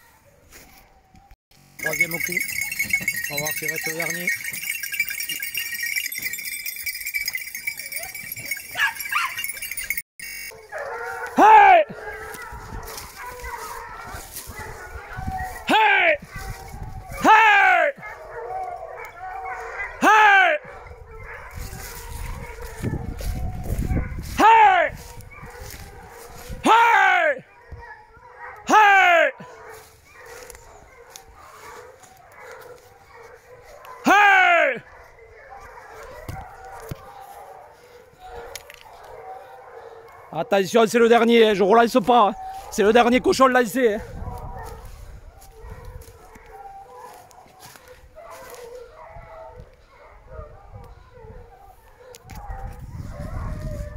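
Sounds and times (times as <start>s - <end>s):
hound baying: 0.0s - 53.9s.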